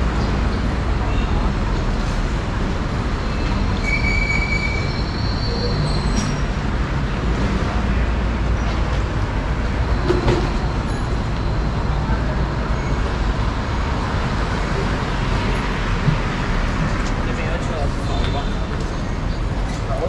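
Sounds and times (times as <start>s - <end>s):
street traffic rumble: 0.0s - 20.0s
short high squeal: 3.8s - 6.4s.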